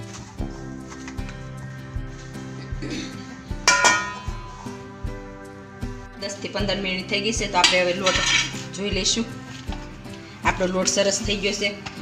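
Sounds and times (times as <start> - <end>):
background music with beat: 0.0 - 12.0
metallic clangs of steel plate: 3.7 - 4.6.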